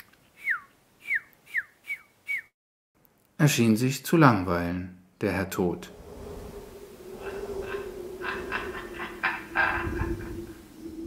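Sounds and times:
whistled chirps falling in pitch: 0.4s - 2.5s.

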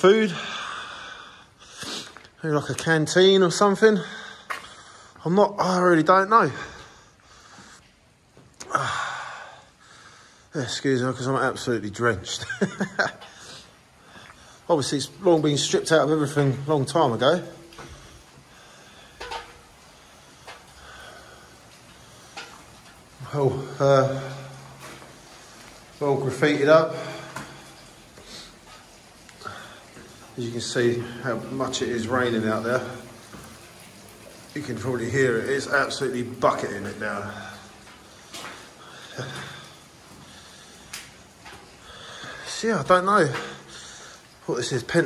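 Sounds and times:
heavy rain hiss: 0.0s - 45.0s
person sniffing: 1.7s - 2.2s.

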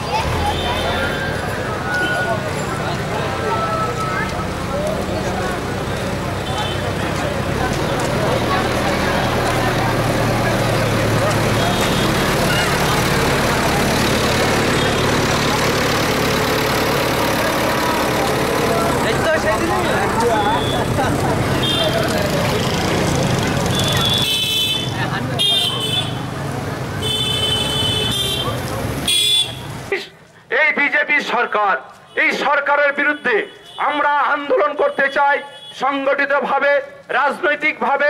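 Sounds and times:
crowd voices: 0.0s - 30.5s
vehicle engine hum: 0.0s - 30.5s.

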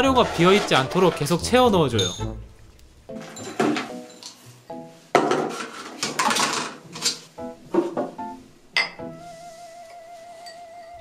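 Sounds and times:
background music: 0.0s - 5.4s, 6.7s - 11.0s.

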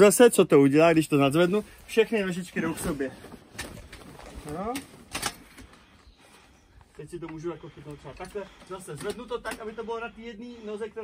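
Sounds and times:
faint handling sounds: 0.8s - 9.8s.

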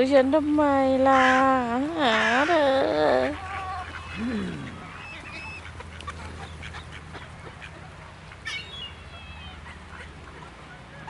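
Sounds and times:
low steady hum: 0.0s - 11.0s
ducks calling: 1.0s - 11.0s.

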